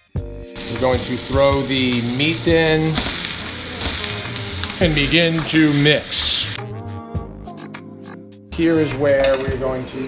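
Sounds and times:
meat sizzling in a frying pan: 0.6s - 6.6s.

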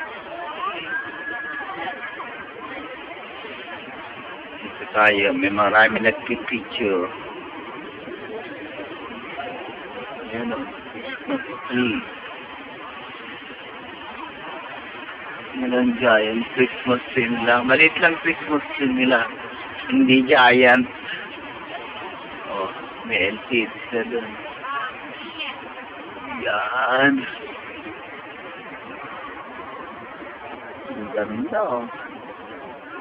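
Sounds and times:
faint voices: 0.0s - 33.0s
outdoor background noise: 0.0s - 33.0s
steady background noise: 0.0s - 33.0s
man speaking: 4.8s - 7.1s, 10.3s - 10.7s, 11.7s - 12.1s, 15.6s - 21.0s, 22.5s - 24.4s, 26.4s - 27.3s, 31.0s - 31.9s.

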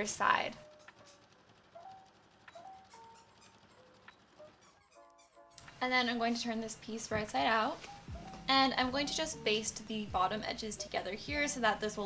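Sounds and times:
squeaker toy squeaking: 2.8s - 5.6s.

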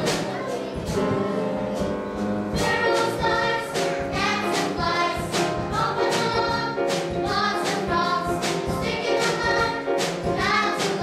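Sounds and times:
instrumental accompaniment: 0.0s - 11.0s
youth choir singing: 2.6s - 11.0s.

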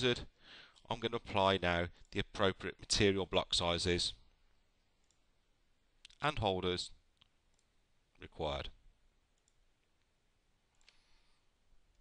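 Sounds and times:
computer mouse click: 9.4s - 9.6s.

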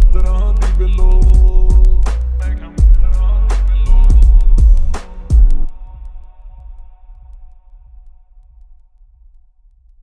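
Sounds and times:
bass-boosted song: 0.0s - 8.3s.

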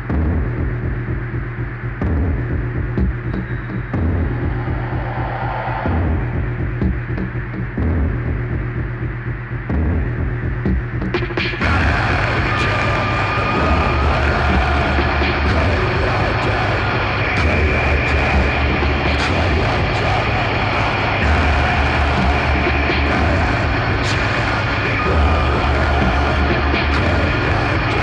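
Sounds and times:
harsh noise layer: 0.0s - 28.0s
throbbing bass pulse: 0.0s - 28.0s
high droning tone: 11.6s - 28.0s.

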